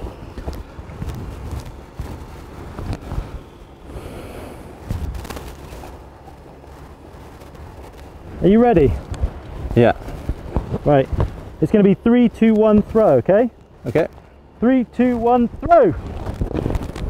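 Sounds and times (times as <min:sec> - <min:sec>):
footsteps on gravel: 0:00.0 - 0:17.0
generator humming: 0:00.0 - 0:17.0.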